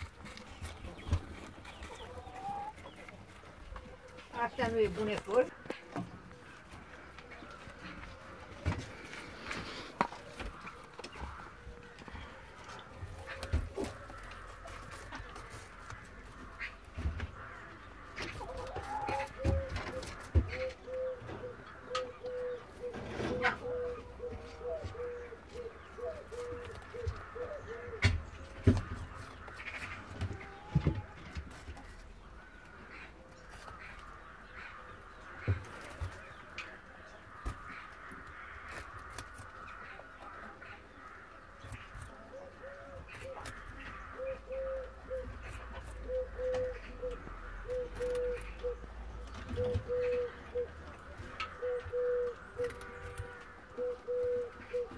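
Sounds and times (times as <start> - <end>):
rabbit chewing: 35.4 - 40.6, 41.2 - 54.9
small crunching clicks: 37.4 - 40.3, 52.6 - 53.6.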